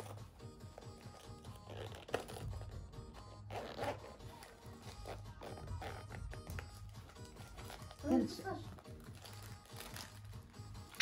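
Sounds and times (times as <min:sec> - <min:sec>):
zip rasping: 0:00.0 - 0:08.3.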